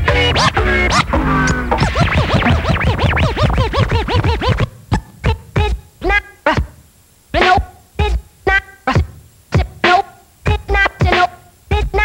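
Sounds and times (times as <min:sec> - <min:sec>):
hip hop beat: 0:00.0 - 0:06.8, 0:07.4 - 0:12.0
vinyl record scratching: 0:00.0 - 0:12.0.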